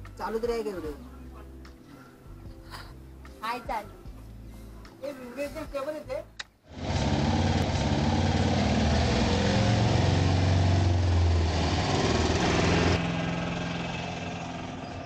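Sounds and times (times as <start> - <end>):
auto-rickshaw engine passing: 6.7 - 15.0.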